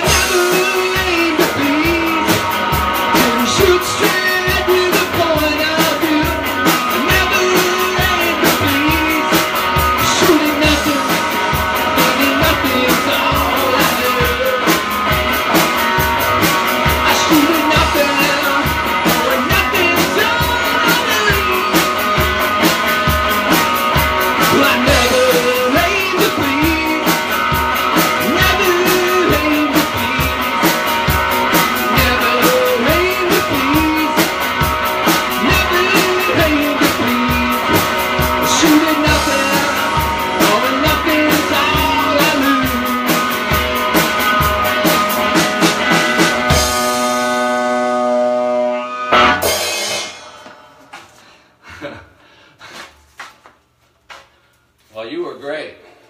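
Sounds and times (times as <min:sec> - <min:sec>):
man singing: 0:00.0 - 0:15.2, 0:16.8 - 0:22.8, 0:23.4 - 0:30.8, 0:31.5 - 0:43.9
electric guitar: 0:00.0 - 0:50.8
drum kit: 0:00.0 - 0:51.2
loud cymbal crash: 0:49.0 - 0:50.5
man speaking: 0:54.9 - 0:56.0.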